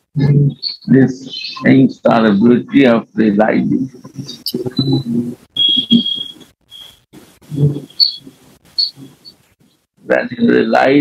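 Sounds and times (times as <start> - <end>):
high-pitched electronic beep: 0.6 - 1.7, 4.1 - 9.4.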